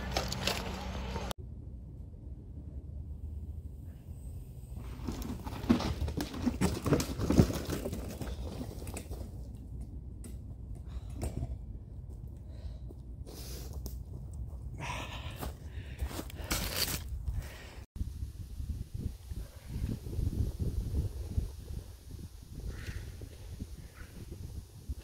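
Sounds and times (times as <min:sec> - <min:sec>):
bike crashing onto dirt: 0:04.8 - 0:09.2
footsteps in dirt and leaves: 0:13.3 - 0:17.6.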